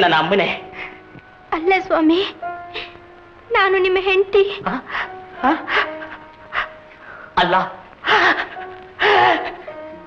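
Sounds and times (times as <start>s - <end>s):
film background music: 0.0s - 10.0s
man gasping cries of distress: 8.1s - 9.6s.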